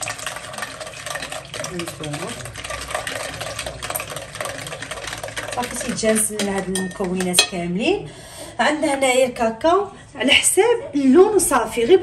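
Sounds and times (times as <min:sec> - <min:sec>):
whisk scraping glass bowl: 0:00.0 - 0:07.7.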